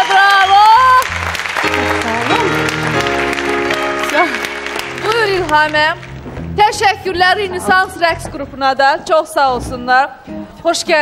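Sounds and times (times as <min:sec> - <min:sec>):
audience applauding: 0:00.0 - 0:06.3
sustained instrumental chords: 0:01.0 - 0:08.6.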